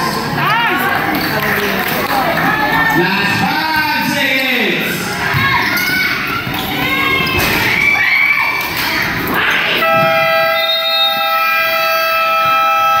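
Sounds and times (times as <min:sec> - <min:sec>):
people shouting: 0:09.3 - 0:13.0
scoreboard buzzer horn: 0:09.8 - 0:13.0.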